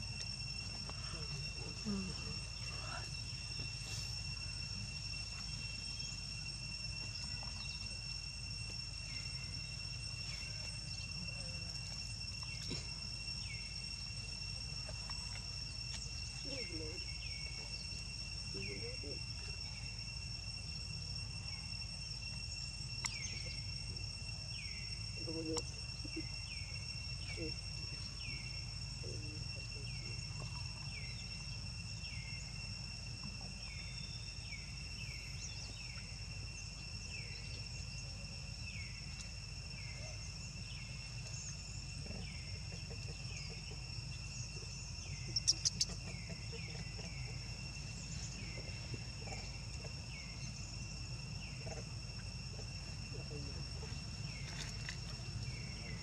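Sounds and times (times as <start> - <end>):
insects droning: 0.0 - 56.0.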